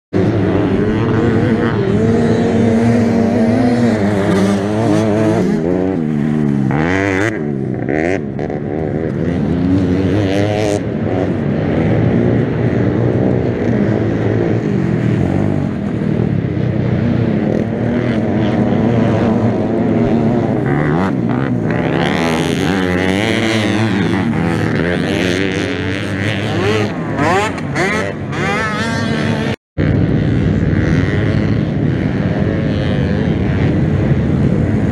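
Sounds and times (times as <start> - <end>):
quad engine running hard: 0.1 - 34.9.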